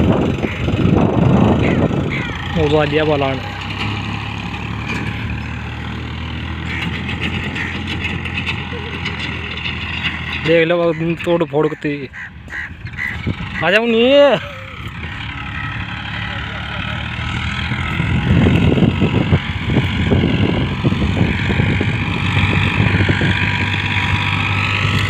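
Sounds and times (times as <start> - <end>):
tractor diesel engine under load: 0.0 - 25.0
person's voice: 2.5 - 3.7.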